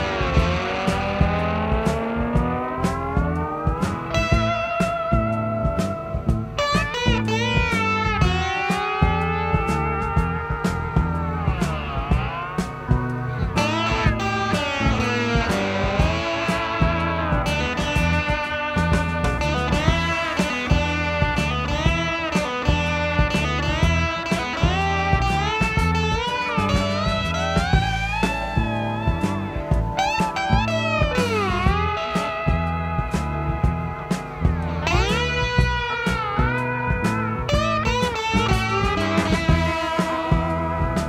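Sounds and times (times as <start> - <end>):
bass line: 0.0 - 41.0
drums: 0.0 - 41.0
overdriven electric guitar solo: 0.0 - 41.0.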